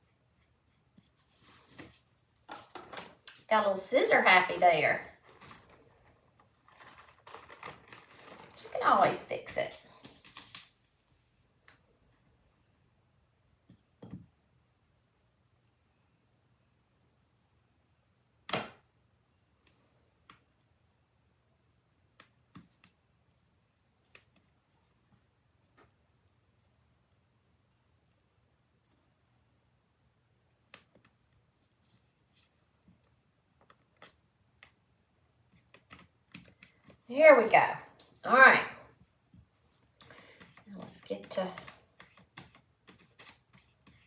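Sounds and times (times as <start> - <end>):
faint clicks and taps: 22.1 - 23.0, 24.0 - 26.0, 30.6 - 31.5, 32.8 - 34.8, 35.5 - 37.1, 39.0 - 44.0.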